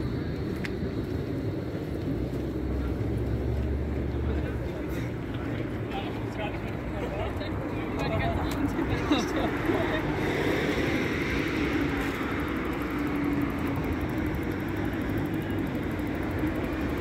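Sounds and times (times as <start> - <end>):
city traffic noise: 0.0 - 17.0
people's voices: 0.0 - 17.0.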